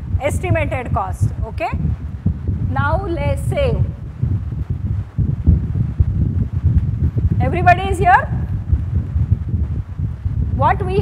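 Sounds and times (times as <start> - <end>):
low uneven rumble: 0.0 - 11.0.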